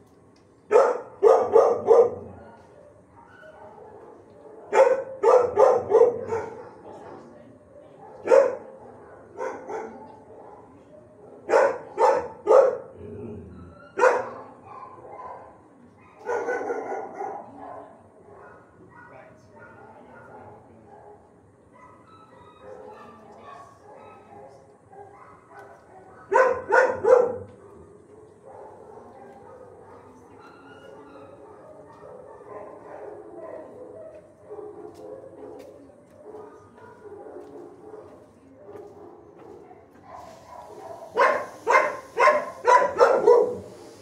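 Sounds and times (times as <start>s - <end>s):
dogs barking: 0.7s - 43.9s.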